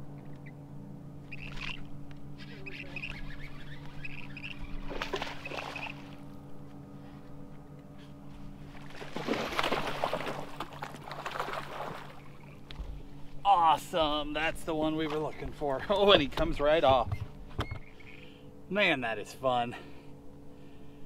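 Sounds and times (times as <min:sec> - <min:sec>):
steady low hum: 0:00.0 - 0:21.0
bird chirping: 0:01.2 - 0:06.0, 0:17.1 - 0:18.3
fish splashing at surface: 0:04.8 - 0:06.2, 0:08.8 - 0:12.2.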